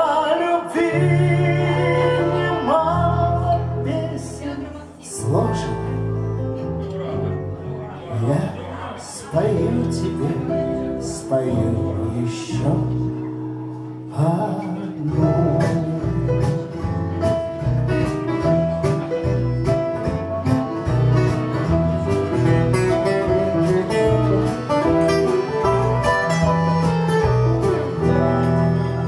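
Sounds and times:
bass guitar: 0.0 - 29.0
keyboard: 0.0 - 29.0
strummed acoustic guitar: 0.4 - 29.0
drum kit beat: 15.5 - 29.0.

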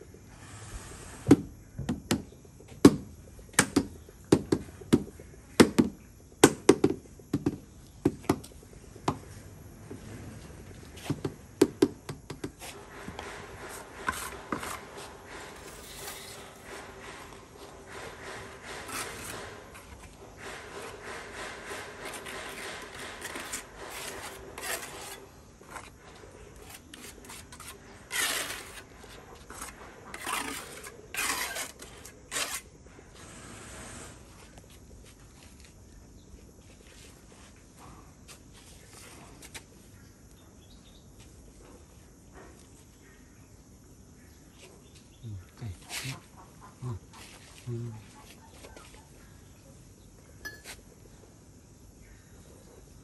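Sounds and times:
trowel scraping mortar on tiles: 12.5 - 34.5.

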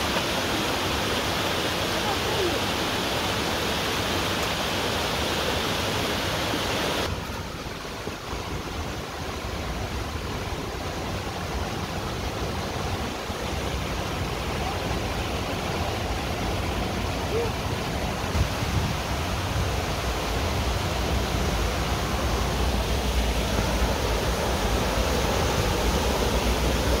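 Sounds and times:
stream water rushing: 0.0 - 27.0.

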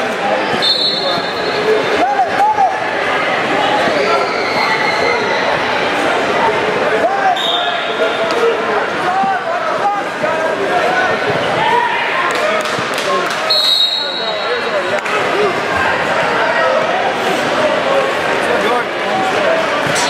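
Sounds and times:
crowd shouting and chattering: 0.0 - 20.0
shrill whistle blasts: 0.6 - 1.6, 13.5 - 14.5.

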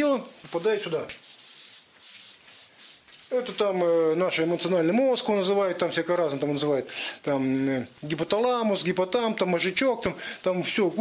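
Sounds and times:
marker scratching on paper: 1.1 - 3.3.

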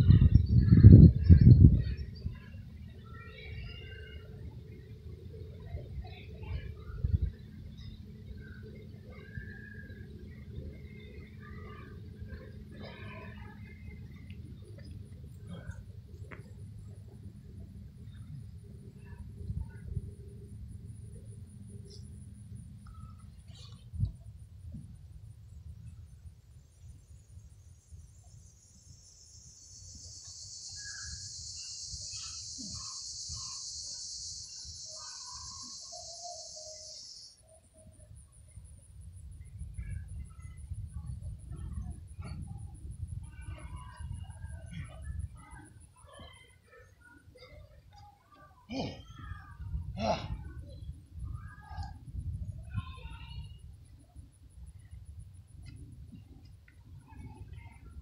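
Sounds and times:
high steady buzz: 28.0 - 37.4
birds calling: 29.3 - 37.4.

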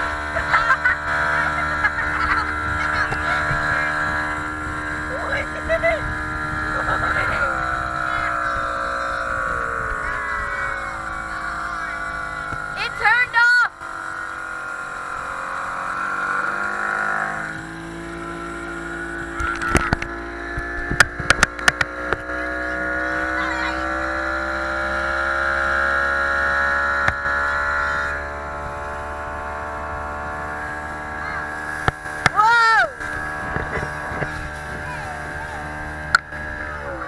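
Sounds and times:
motorboat engine running: 0.0 - 37.0.

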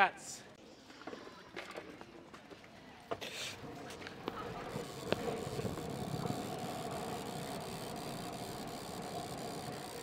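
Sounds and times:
bike clicks and rattles: 4.0 - 10.0.

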